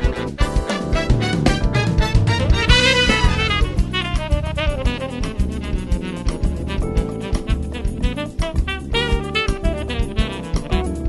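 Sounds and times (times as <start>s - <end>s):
bass and drums: 0.0s - 11.0s
saxophone melody: 0.0s - 11.0s.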